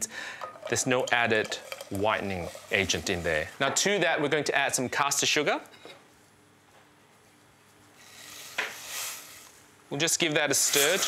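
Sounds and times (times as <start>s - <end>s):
sugar grains pouring: 0.7s - 3.5s, 8.0s - 9.6s, 10.5s - 11.0s.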